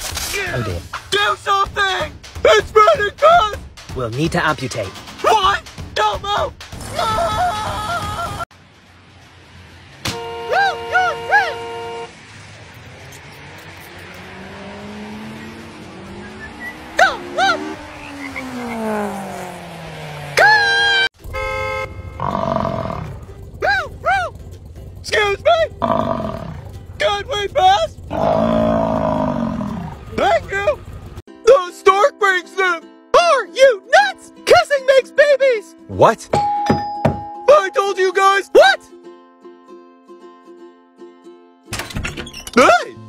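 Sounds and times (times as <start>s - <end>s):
music: 0.9s - 7.0s, 31.3s - 43.0s
car horn honking: 10.0s - 12.2s, 20.4s - 23.6s.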